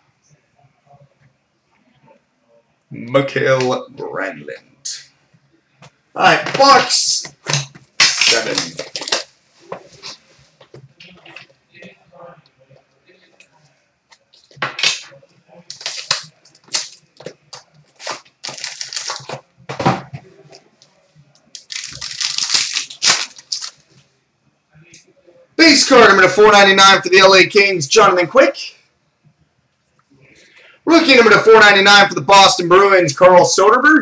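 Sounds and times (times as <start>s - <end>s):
plastic wrap tearing and crinkling: 8.0s - 9.4s, 14.8s - 19.4s, 21.5s - 24.0s.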